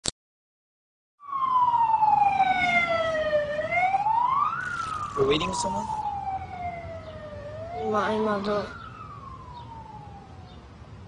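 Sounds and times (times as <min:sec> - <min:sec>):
siren wailing: 0:01.2 - 0:11.0.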